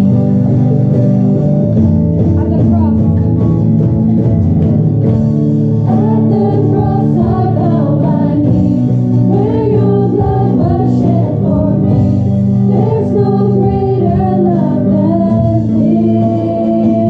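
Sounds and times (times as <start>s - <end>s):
sustained instrumental accompaniment: 0.0s - 17.0s
choir singing worship song: 5.8s - 17.0s.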